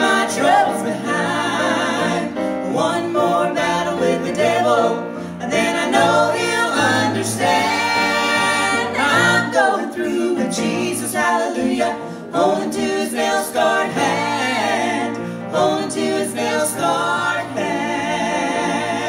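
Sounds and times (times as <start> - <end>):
people singing in harmony: 0.0 - 19.0.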